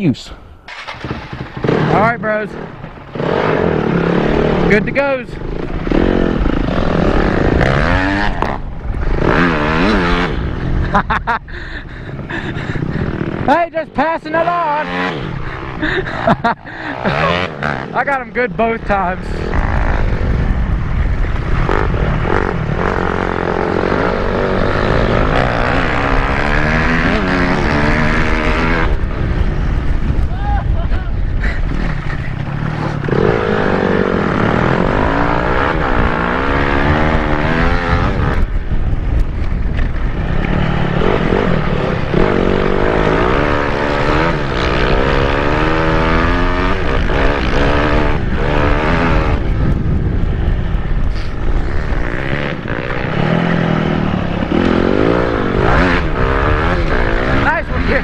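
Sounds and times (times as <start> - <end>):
wind noise: 0.0 - 58.0
dirt bike engine revving: 0.7 - 30.8, 31.4 - 58.0.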